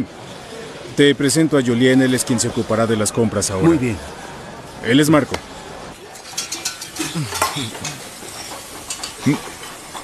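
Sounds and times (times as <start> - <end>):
food sizzling in a pan: 6.0 - 10.0
utensils clicking and clinking: 6.1 - 10.0.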